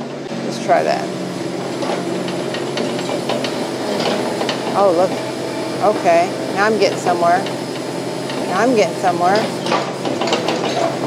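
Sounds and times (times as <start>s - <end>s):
diesel engine running: 0.0s - 11.0s
excavator blade pushing dirt: 0.0s - 11.0s.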